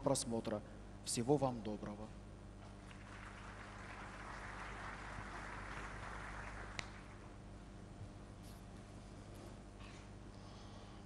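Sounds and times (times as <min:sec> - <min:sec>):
steady low hum: 0:00.0 - 0:11.0
faint audience applause: 0:02.8 - 0:07.4.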